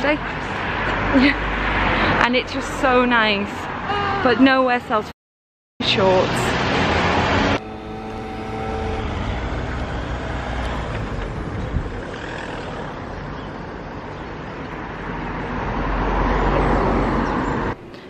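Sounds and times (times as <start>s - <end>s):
cars driving by: 0.0s - 5.1s, 5.8s - 18.0s.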